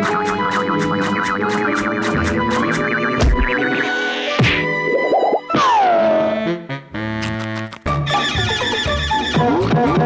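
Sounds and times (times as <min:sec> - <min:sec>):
cartoon music: 0:00.0 - 0:10.0.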